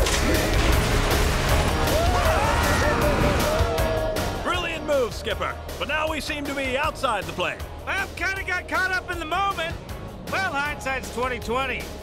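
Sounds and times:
background music: 0.0s - 12.0s
high gliding cartoon yells: 1.9s - 4.4s.

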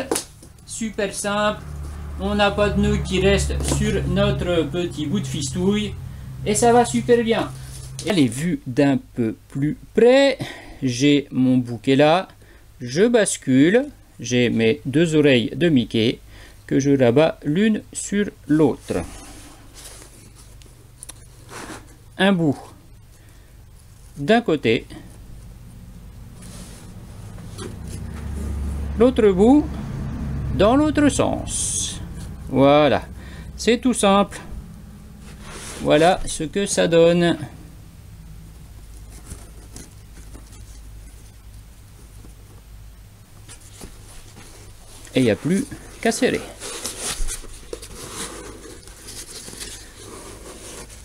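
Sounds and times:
low steady hum: 0.0s - 51.0s
cord rustling against foam mat: 6.5s - 8.3s, 18.7s - 29.0s, 35.1s - 36.5s, 38.5s - 51.0s.

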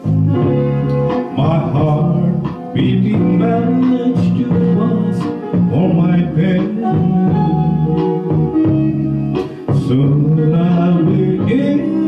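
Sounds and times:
guitar backing track: 0.0s - 12.0s
man singing: 1.1s - 7.6s, 9.6s - 12.0s.

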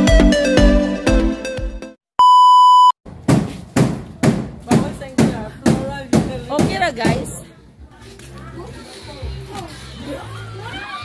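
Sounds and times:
high-pitched test-tone beep: 2.2s - 3.0s.

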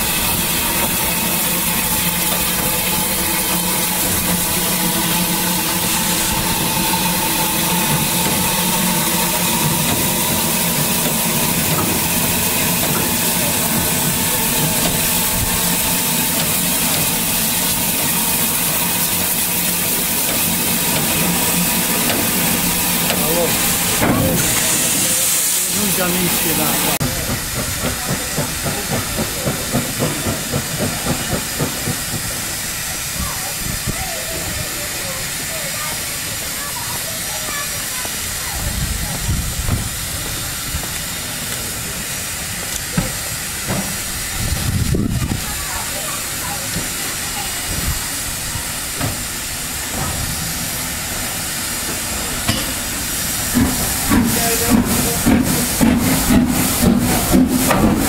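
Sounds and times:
steam locomotive hissing: 0.0s - 58.0s.

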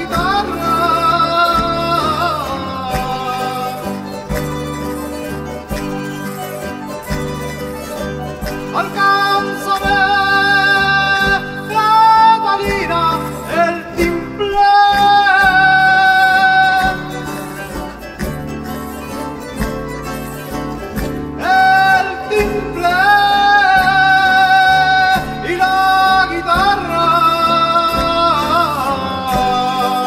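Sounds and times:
guitars strumming dance tune: 0.0s - 30.0s.

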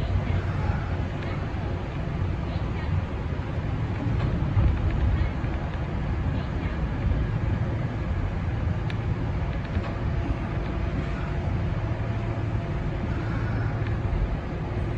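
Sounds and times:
train wheels rumbling: 0.0s - 14.9s.

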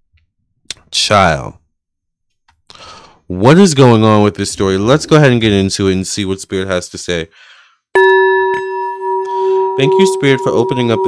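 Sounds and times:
singing bowl ringing: 8.0s - 11.0s.

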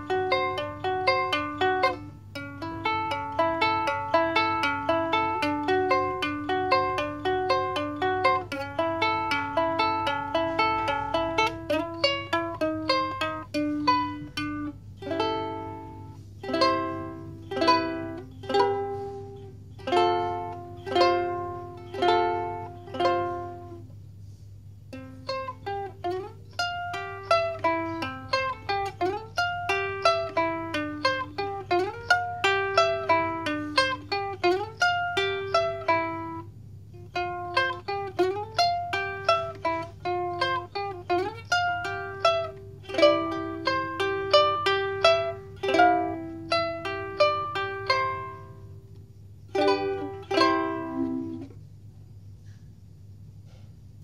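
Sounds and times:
ukulele fingerpicked: 0.0s - 51.7s.

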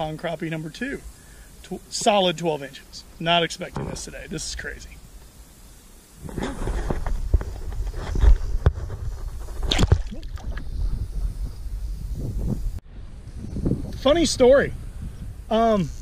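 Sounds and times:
low microphone rumble: 6.2s - 16.0s
water splashing and sloshing: 9.6s - 10.7s.

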